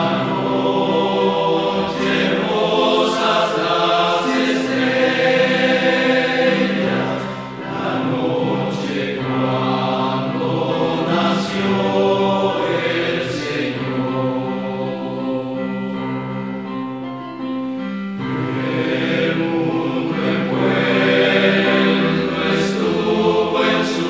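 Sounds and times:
choir singing a slow hymn: 0.0 - 16.7, 18.0 - 24.0.

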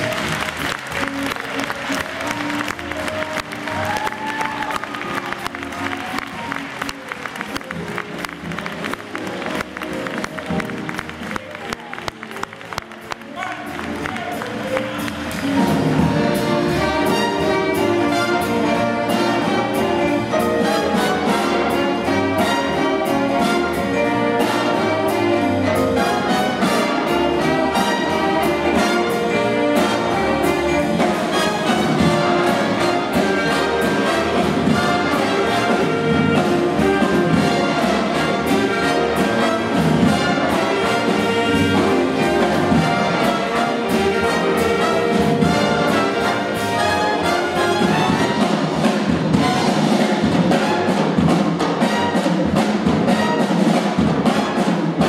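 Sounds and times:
jazz big band playing blues: 0.0 - 55.0.

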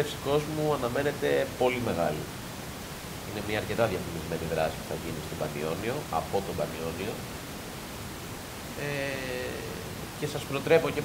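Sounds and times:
microphone background hiss: 0.0 - 11.0
man saying eh: 8.8 - 11.0.

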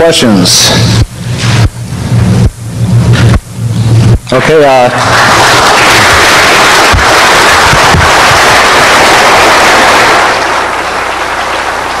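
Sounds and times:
audience applauding: 4.4 - 12.0.

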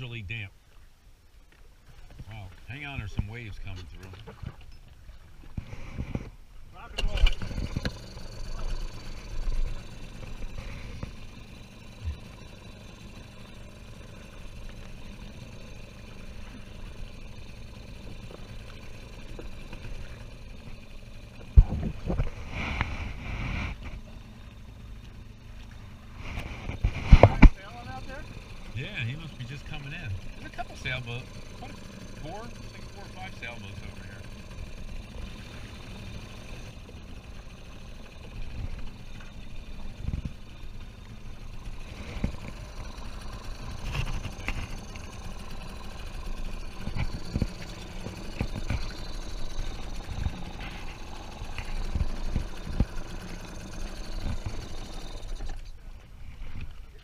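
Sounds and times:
outboard motor running: 0.0 - 57.0
waves slapping against hull: 25.0 - 57.0.

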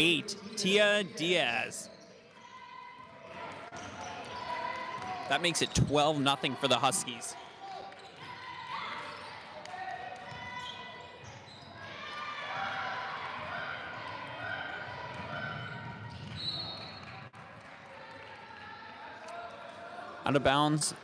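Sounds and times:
voices of players and spectators: 0.0 - 21.0.

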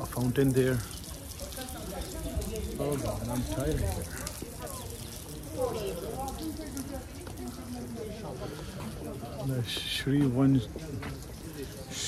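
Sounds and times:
faint voices: 0.0 - 12.0
fountain water splashing: 0.0 - 12.0.

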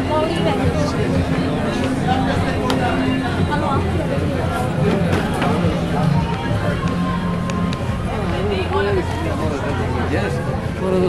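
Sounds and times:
music playing: 0.0 - 11.0
people talking: 0.0 - 11.0.

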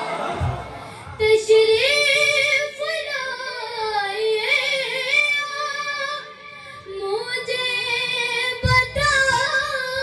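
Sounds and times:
boy singing into a microphone: 1.0 - 10.0.

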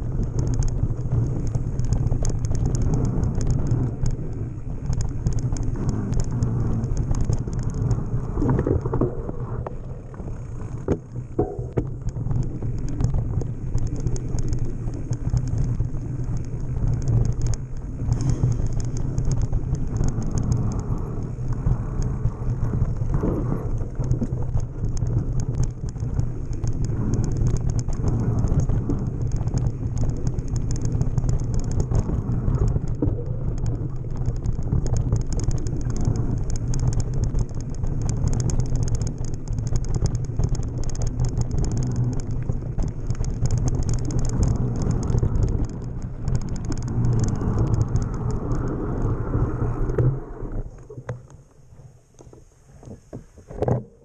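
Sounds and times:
bike rattling over rough ground: 0.0 - 54.0
wind and rolling tyres rumble: 0.0 - 54.0.

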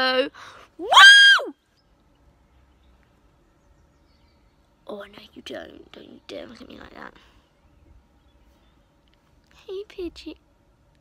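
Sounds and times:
girl shrieking: 0.8 - 1.5.

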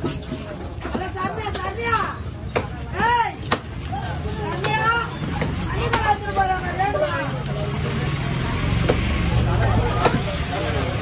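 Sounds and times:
knife striking wooden chopping block: 2.5 - 3.9, 9.9 - 10.3.

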